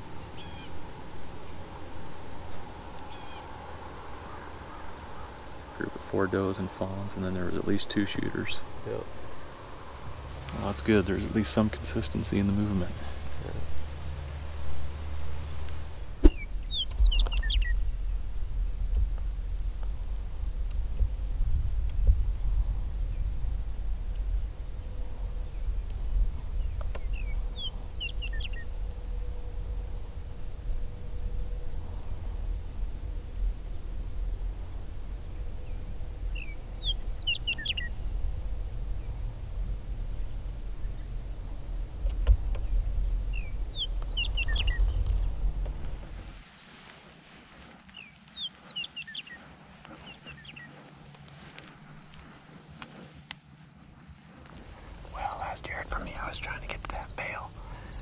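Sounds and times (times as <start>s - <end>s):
songbird singing: 0.0s - 58.0s.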